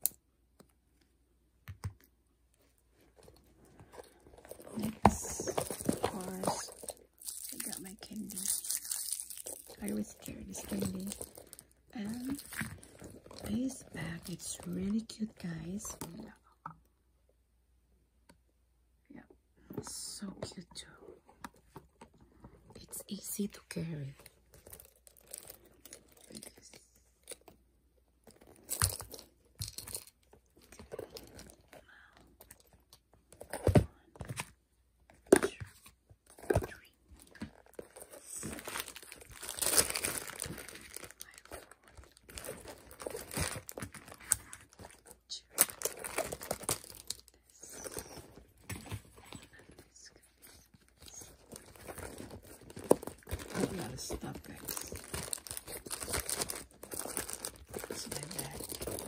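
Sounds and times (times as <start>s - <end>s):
plastic wrapper crinkling: 3.3s - 16.2s, 24.5s - 26.6s, 36.4s - 48.4s, 51.0s - 59.0s.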